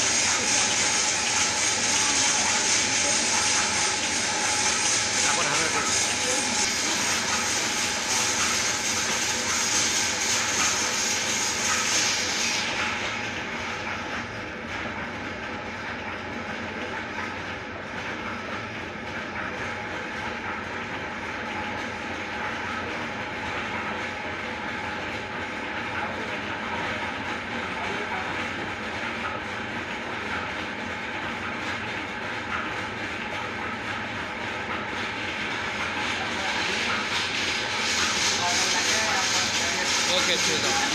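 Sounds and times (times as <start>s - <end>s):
lathe rattling: 35.0s - 40.9s
lathe tool shaving wood: 38.2s - 40.9s.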